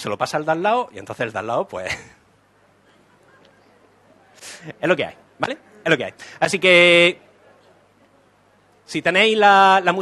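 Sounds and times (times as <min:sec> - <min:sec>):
faint audience sounds: 0:00.0 - 0:10.0.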